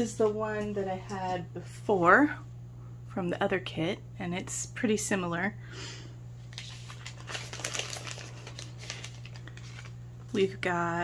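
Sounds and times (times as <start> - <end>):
plastic packaging crinkling: 6.4 - 10.6.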